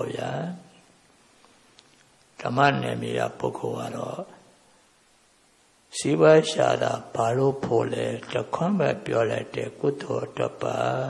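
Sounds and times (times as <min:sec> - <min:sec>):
elderly man speaking: 0:00.0 - 0:00.7, 0:06.0 - 0:11.0.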